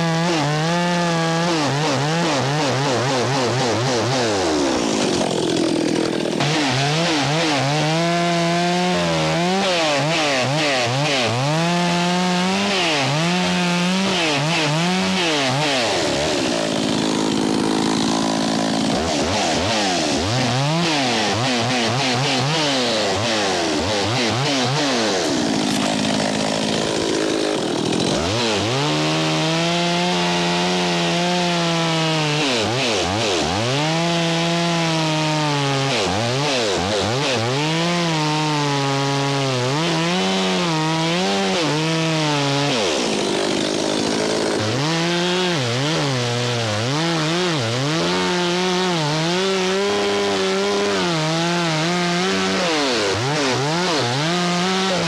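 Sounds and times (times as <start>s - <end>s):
chainsaw cutting wood: 0.0s - 55.0s.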